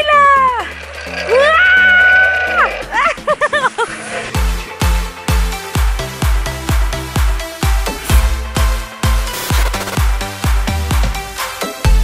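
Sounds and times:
woman laughing: 0:02.9 - 0:04.1
background music with steady beat: 0:04.4 - 0:12.0.

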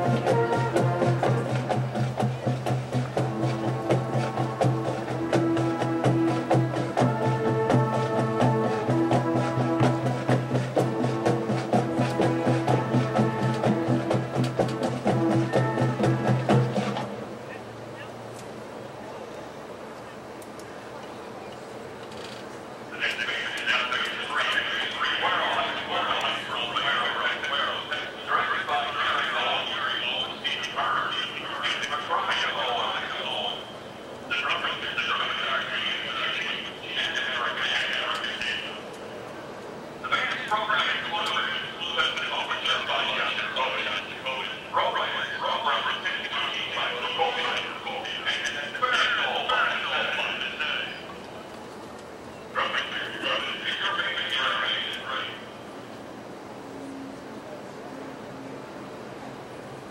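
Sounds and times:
marching band playing: 0:00.0 - 0:17.5
quiet background noise: 0:00.0 - 0:59.9
distant echoing pa speech: 0:15.1 - 0:21.9, 0:22.8 - 0:59.9.

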